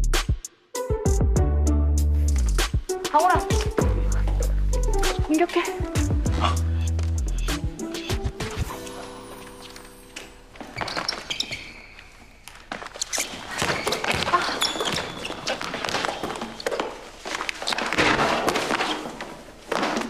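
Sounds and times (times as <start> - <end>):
players' footfalls: 3.2 - 7.2, 10.5 - 20.0
basketball bouncing on wooden floor: 13.2 - 16.9.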